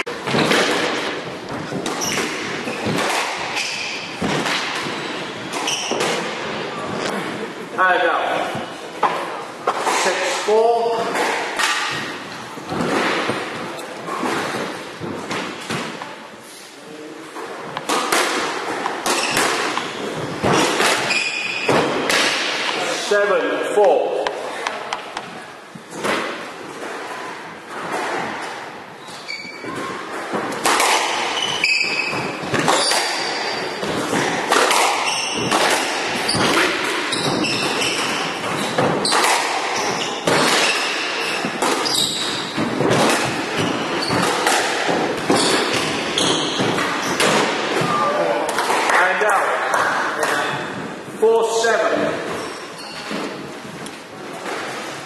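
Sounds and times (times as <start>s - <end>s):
squash ball thuds: 0.0s - 7.4s, 29.6s - 51.0s
shoes squeaking on wooden floor: 0.0s - 7.5s, 17.2s - 22.8s, 27.6s - 48.4s, 52.1s - 55.0s.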